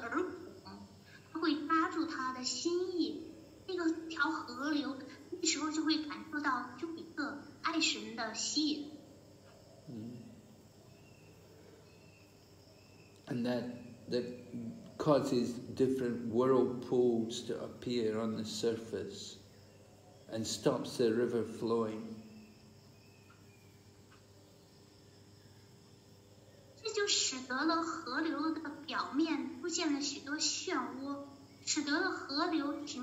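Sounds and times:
crickets trilling: 0:00.0 - 0:33.0
faint room hum: 0:00.0 - 0:33.0
person speaking: 0:09.9 - 0:10.2, 0:13.3 - 0:19.2.

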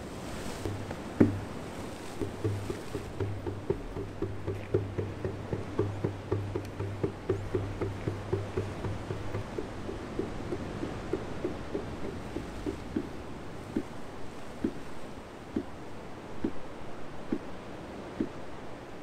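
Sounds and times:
hand drum beating: 0:00.5 - 0:15.8
low steady tone: 0:00.7 - 0:17.6.

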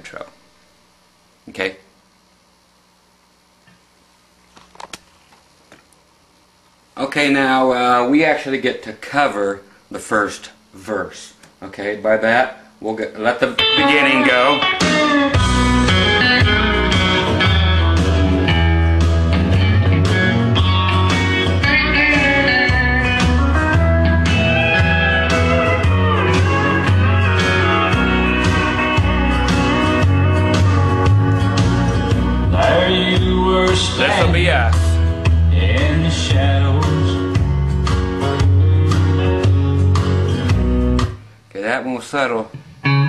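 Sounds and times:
guitar amplifier hum: 0:00.0 - 0:43.0
country swing band: 0:13.6 - 0:41.2.

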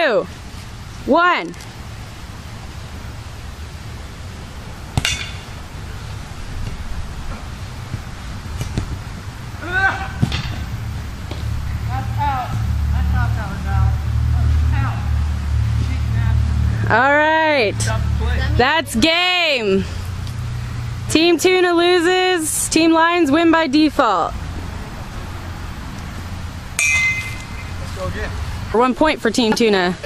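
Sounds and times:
steady low rumble: 0:01.7 - 0:21.8
distant shouts of players: 0:09.6 - 0:10.4.

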